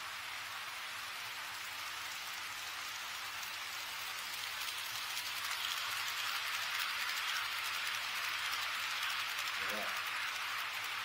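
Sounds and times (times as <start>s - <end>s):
model trains whirring on track: 0.0s - 11.0s.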